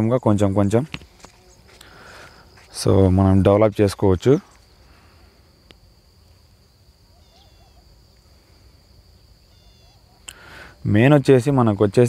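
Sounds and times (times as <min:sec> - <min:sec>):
high insect buzz: 0:00.0 - 0:12.0
wavering bird call: 0:07.1 - 0:07.9, 0:09.5 - 0:10.3.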